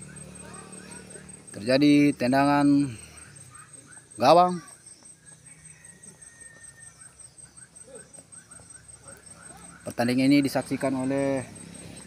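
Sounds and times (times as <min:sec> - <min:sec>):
high-pitched pulsing trill: 0:00.0 - 0:02.7.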